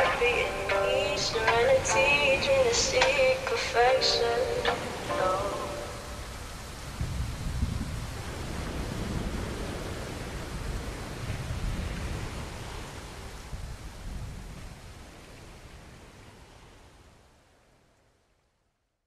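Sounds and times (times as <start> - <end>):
steady hissing noise: 0.0 - 19.0.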